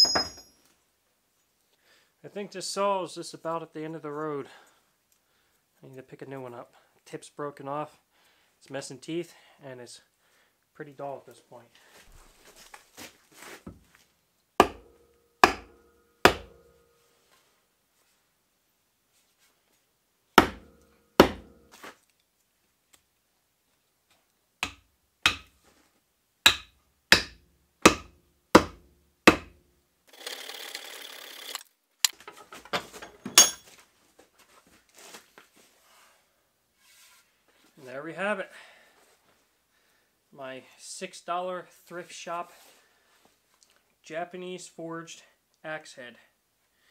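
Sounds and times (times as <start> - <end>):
short scrape: 35.0 - 37.4.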